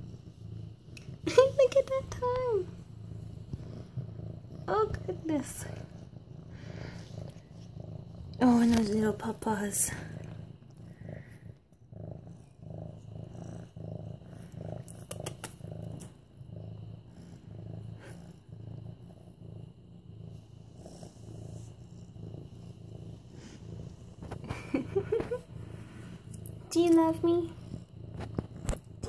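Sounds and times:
cat purring: 0.0s - 29.0s
faint clicks: 14.9s - 16.1s.

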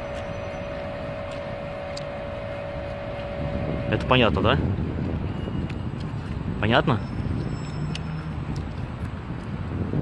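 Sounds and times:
mid-pitched hum: 0.0s - 10.0s
street traffic rush: 0.0s - 10.0s.

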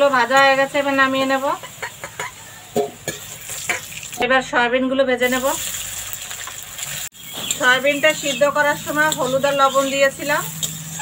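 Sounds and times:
food sizzling in hot oil: 0.0s - 4.3s, 5.1s - 11.0s
metal ladle scraping pan: 7.2s - 11.0s.

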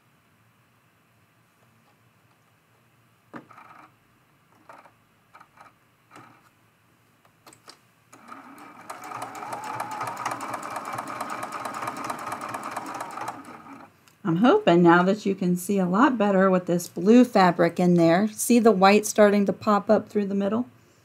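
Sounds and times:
sewing machine stitching: 3.4s - 3.9s, 4.6s - 6.4s, 8.2s - 13.9s.

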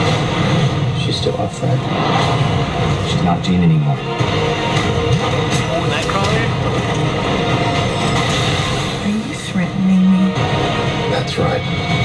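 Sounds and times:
train rumbling: 0.0s - 12.0s.

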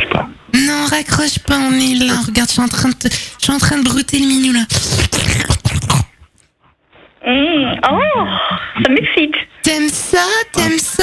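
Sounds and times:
wet mouth slurping: 4.7s - 6.4s.

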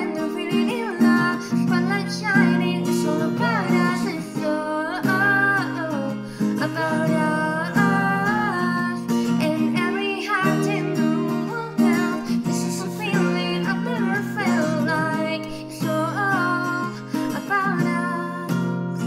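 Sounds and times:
acoustic guitar strummed: 0.0s - 19.0s
person singing: 0.0s - 19.0s.

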